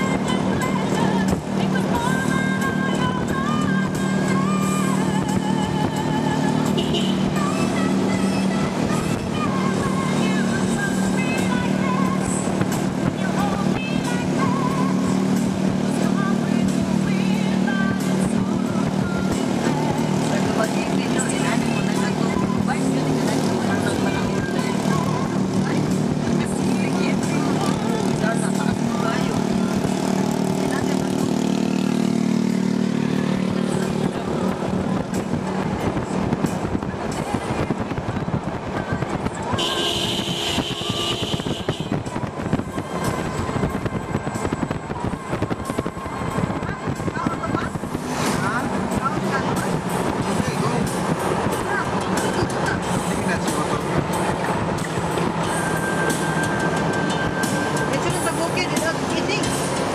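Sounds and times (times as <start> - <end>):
music: 0.0 - 59.9
vehicle engine drone: 0.0 - 59.9.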